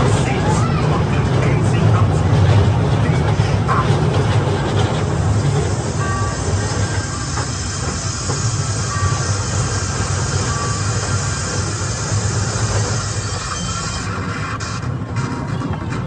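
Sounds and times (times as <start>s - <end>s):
ride train rumbling on track: 0.0s - 16.0s.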